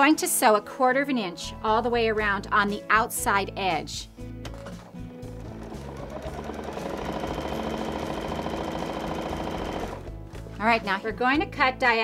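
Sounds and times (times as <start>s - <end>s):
background music: 0.0s - 12.0s
sewing machine stitching: 4.6s - 10.1s.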